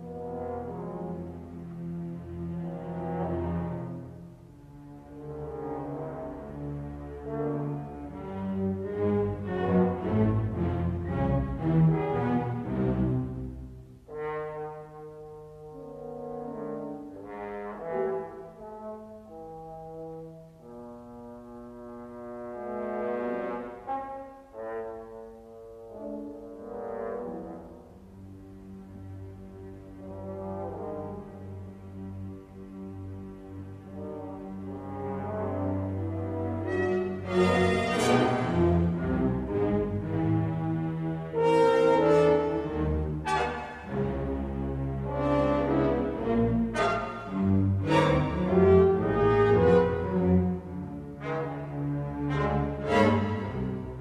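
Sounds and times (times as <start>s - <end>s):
orchestral sustained chords: 25.8s - 54.0s.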